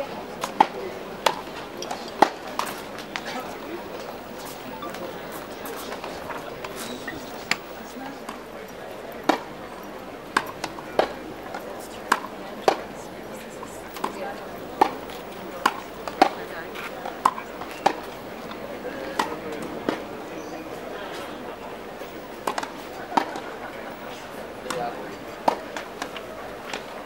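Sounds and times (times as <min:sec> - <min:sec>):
murmur of voices: 0:00.0 - 0:27.0
tennis ball struck with racquets: 0:00.4 - 0:08.4, 0:09.2 - 0:09.5, 0:10.3 - 0:12.9, 0:14.8 - 0:20.1, 0:22.4 - 0:23.6, 0:24.6 - 0:26.9.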